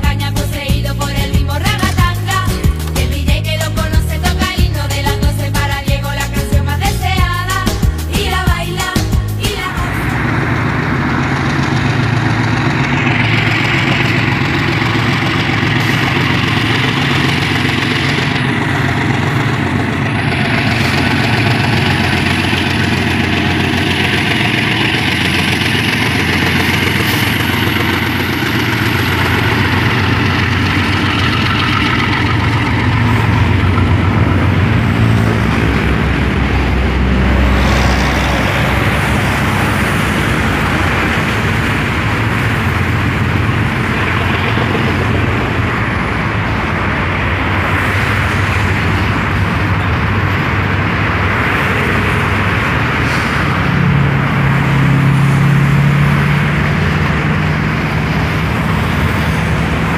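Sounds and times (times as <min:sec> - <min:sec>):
diesel locomotives running: 0:00.0 - 0:59.9
freight cars rolling: 0:00.0 - 0:59.9.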